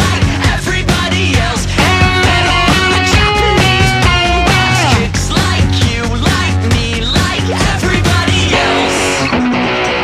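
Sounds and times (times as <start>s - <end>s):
rock band backing track: 0.0s - 10.0s
strummed electric guitar: 0.0s - 10.0s.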